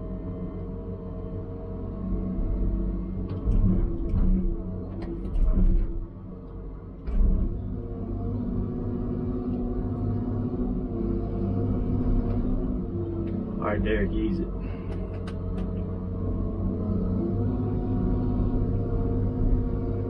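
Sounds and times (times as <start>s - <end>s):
diesel engine and hydraulics: 0.0s - 20.0s.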